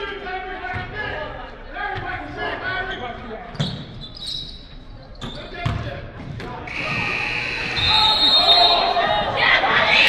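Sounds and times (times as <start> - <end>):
voices in a gym: 0.0 - 10.0.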